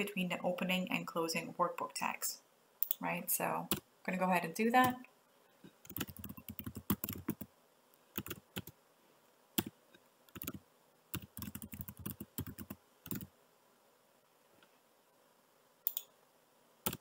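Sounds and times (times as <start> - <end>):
computer keyboard typing: 5.8 - 7.5, 8.2 - 8.8, 10.3 - 13.3.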